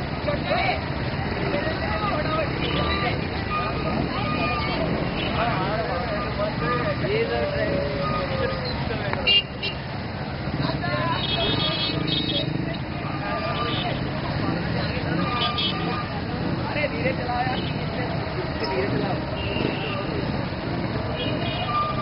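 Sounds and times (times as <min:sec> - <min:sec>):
motorcycle engines rumbling: 0:00.0 - 0:22.0.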